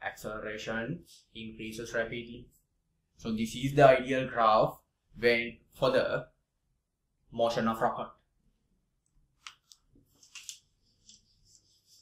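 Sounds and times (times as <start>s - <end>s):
cloth wiping a whiteboard: 9.4s - 12.0s.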